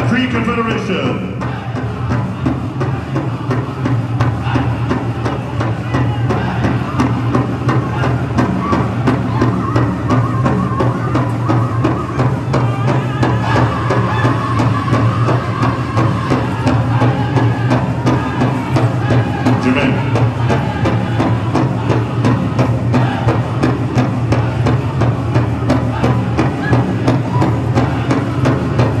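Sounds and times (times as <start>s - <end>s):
large drum beating: 0.0s - 29.0s
singers chanting: 0.0s - 29.0s.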